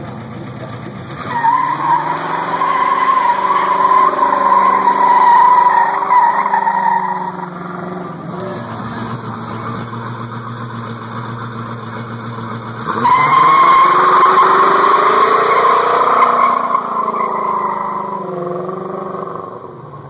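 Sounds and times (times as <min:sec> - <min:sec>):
car engine idling and revving: 0:00.0 - 0:20.0
tyres squealing: 0:01.2 - 0:09.2, 0:13.0 - 0:18.4.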